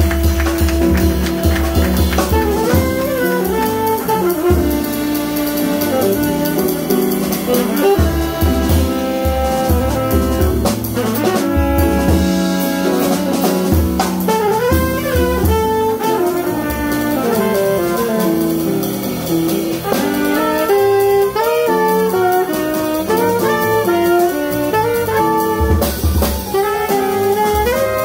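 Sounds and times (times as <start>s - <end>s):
drum kit: 0.0s - 28.0s
keyboard accompaniment: 0.0s - 28.0s
saxophone: 0.0s - 28.0s
trumpet: 0.0s - 28.0s.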